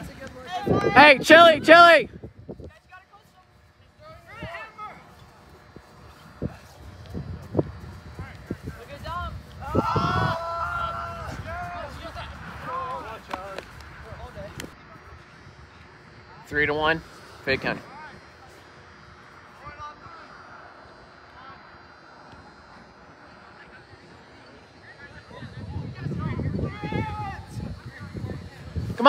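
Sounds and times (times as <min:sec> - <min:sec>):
players shouting: 0:00.0 - 0:02.1, 0:08.1 - 0:14.7, 0:26.4 - 0:29.0.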